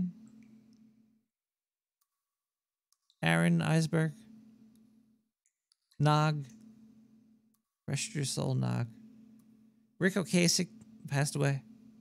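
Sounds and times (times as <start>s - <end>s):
man speaking: 6.0s - 6.5s, 7.9s - 9.0s, 10.0s - 11.7s.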